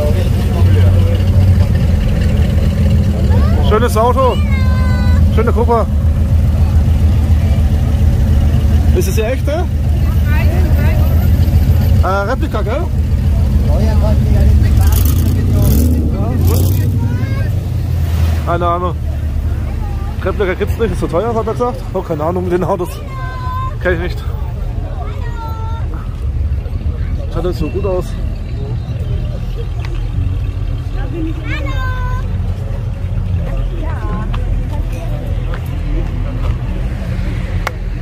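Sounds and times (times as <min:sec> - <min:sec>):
car engine idling: 0:00.0 - 0:38.0
people's voices: 0:00.0 - 0:38.0.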